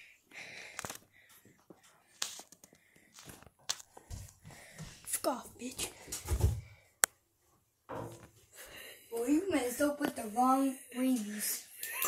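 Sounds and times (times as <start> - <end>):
faint rustling and handling: 0.6 - 6.0.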